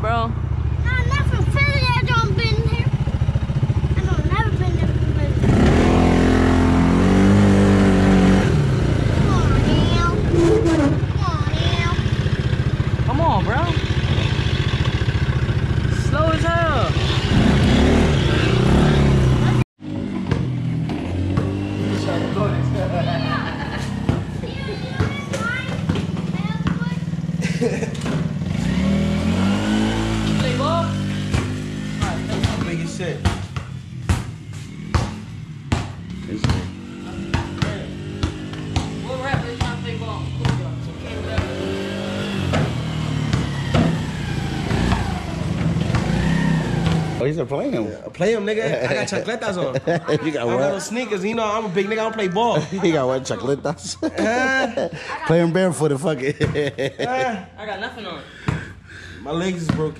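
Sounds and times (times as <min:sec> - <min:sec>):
off-road vehicle engines revving: 0:00.0 - 0:59.9
people talking: 0:00.9 - 0:02.9, 0:03.9 - 0:05.5, 0:09.2 - 0:12.0, 0:13.1 - 0:13.8, 0:16.0 - 0:17.0, 0:24.4 - 0:27.8, 0:32.0 - 0:33.2, 0:36.2 - 0:36.7, 0:39.0 - 0:41.6, 0:47.2 - 0:58.3, 0:59.2 - 0:59.9.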